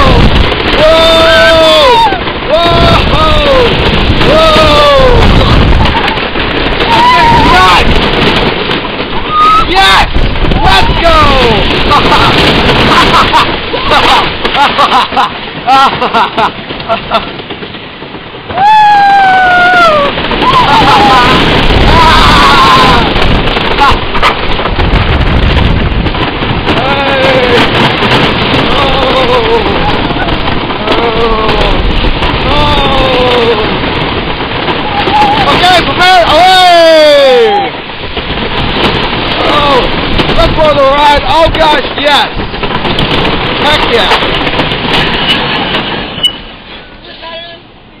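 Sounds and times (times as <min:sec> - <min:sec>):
riders yelling: 0:00.0 - 0:08.1, 0:09.2 - 0:14.7, 0:18.5 - 0:24.1, 0:26.7 - 0:27.9, 0:28.5 - 0:34.0, 0:34.7 - 0:37.9, 0:39.4 - 0:42.4
wind buffeting microphone: 0:00.0 - 0:47.0
roller coaster rumbling on track: 0:00.0 - 0:48.0
faint squeal: 0:46.2 - 0:46.5.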